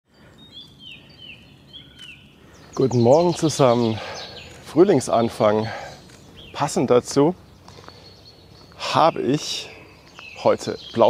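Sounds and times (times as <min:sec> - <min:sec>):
woodland ambience hiss: 0:00.1 - 0:11.0
songbird whistling: 0:00.3 - 0:04.6.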